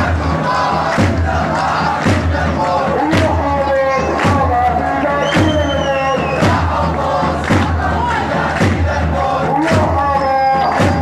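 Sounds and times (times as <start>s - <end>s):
crowd chanting: 0.0s - 11.0s
sharp rhythmic beat: 0.0s - 11.0s.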